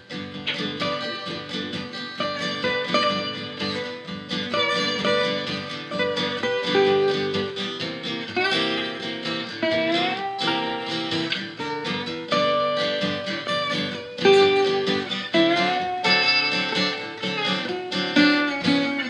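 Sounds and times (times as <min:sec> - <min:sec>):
slide resonator guitar: 0:00.0 - 0:19.0
strummed acoustic guitar: 0:00.0 - 0:19.0.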